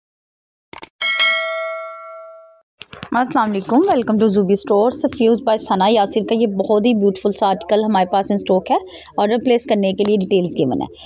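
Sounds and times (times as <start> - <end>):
notification bell ding: 1.0 - 2.6.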